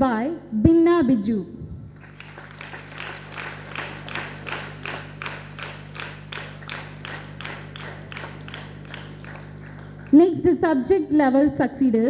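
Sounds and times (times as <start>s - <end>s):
low steady hum: 0.0s - 12.0s
audience clapping in rhythm: 2.0s - 10.3s.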